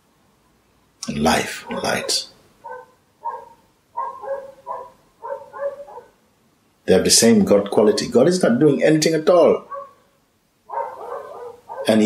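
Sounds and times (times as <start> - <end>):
dog barking: 1.6 - 6.2, 9.6 - 10.1, 10.7 - 12.0.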